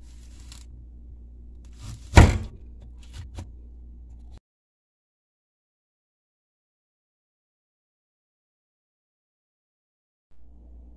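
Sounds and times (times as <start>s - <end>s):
apple corer scraping through apple: 0.0s - 0.7s, 1.7s - 3.5s.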